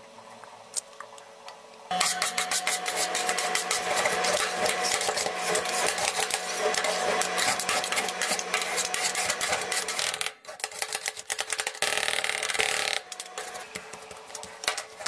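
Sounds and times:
metal spatulas scraping cold plate: 0:01.9 - 0:11.0.

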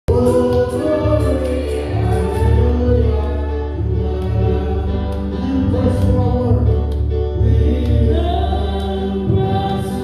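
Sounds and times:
gospel choir singing: 0:00.1 - 0:10.0
keyboard with heavy bass: 0:00.1 - 0:10.0.

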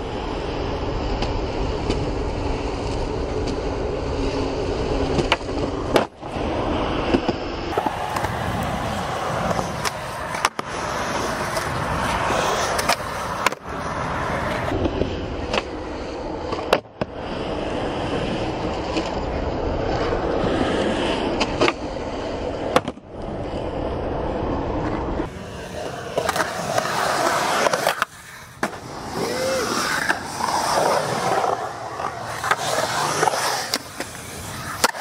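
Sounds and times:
skateboard wheels rolling on concrete: 0:00.0 - 0:35.0
skateboard tail clacks and landings: 0:04.8 - 0:17.2, 0:18.4 - 0:23.7, 0:24.4 - 0:35.0.

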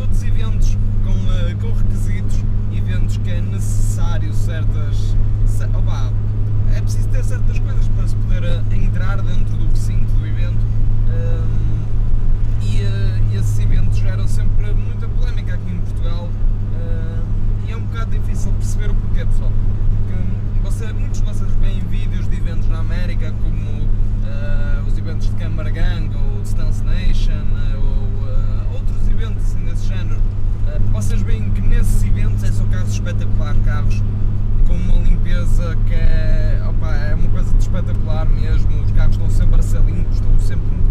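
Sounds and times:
car engine drone: 0:00.0 - 0:40.9
man talking: 0:00.0 - 0:40.9
road noise: 0:00.0 - 0:40.9.

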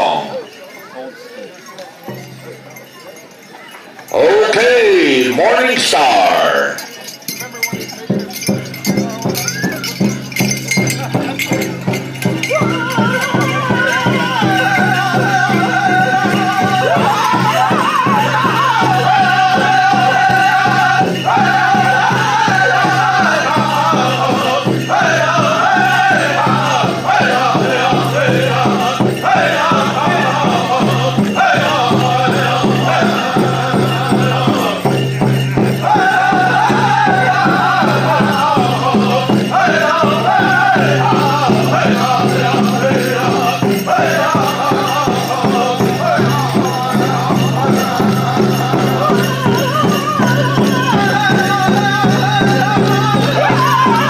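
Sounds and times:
high-pitched group singing: 0:04.1 - 0:06.8, 0:11.9 - 0:54.0
fast steady drumbeat: 0:04.2 - 0:54.0.

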